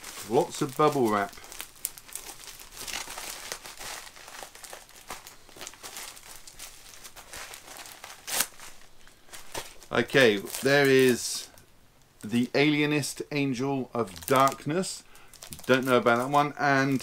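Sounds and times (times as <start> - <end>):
bubble wrap crackling: 0.0 - 13.2, 13.8 - 17.0.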